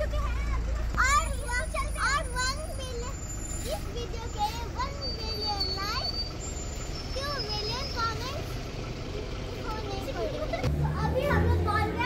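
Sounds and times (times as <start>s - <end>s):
buses and traffic rumbling: 0.0s - 12.0s
children talking: 0.0s - 12.0s.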